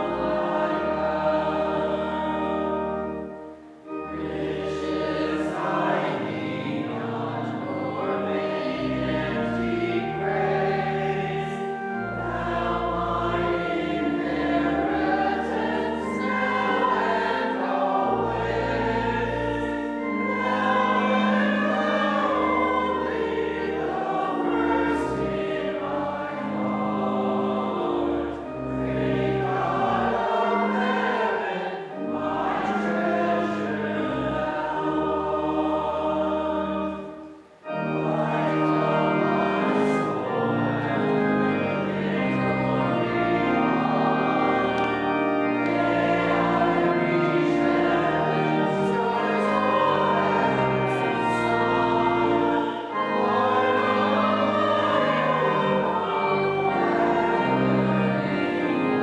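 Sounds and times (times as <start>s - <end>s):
church organ: 0.0s - 59.0s
congregation singing a hymn: 0.0s - 59.0s.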